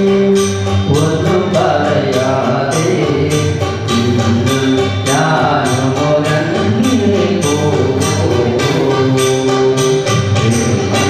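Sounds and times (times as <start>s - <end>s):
man singing through microphone: 0.0s - 11.0s
percussion beat: 0.0s - 11.0s.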